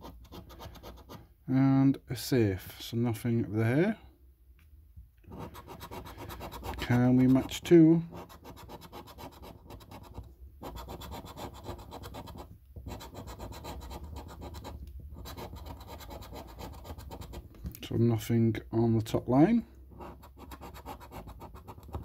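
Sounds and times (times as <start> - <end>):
scratch card coating scraped: 0.0 - 1.2, 5.3 - 17.5, 19.9 - 22.0.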